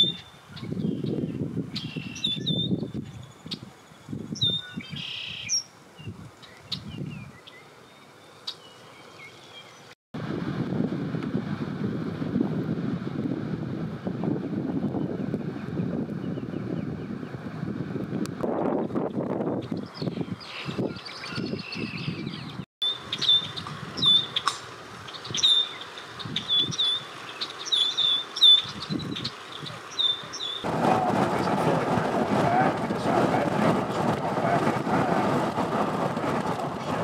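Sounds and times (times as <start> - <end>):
wind buffeting microphone: 0.0 - 7.4, 10.2 - 37.0
bird chirping: 0.0 - 9.9, 19.6 - 30.7.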